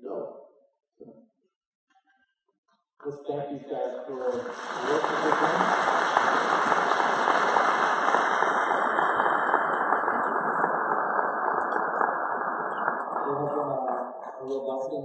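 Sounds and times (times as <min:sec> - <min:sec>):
congregation applauding: 0:04.0 - 0:14.8.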